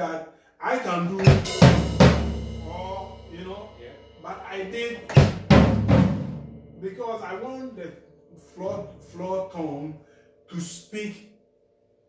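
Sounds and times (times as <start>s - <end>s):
floor tom drum hits: 1.2s - 6.9s.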